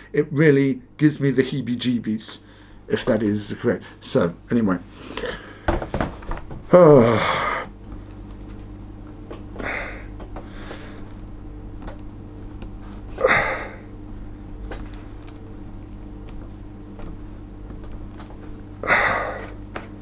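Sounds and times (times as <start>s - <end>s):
steady low hum: 0.0s - 20.0s
heavy breaths: 9.6s - 11.1s, 13.1s - 13.9s, 18.8s - 19.6s.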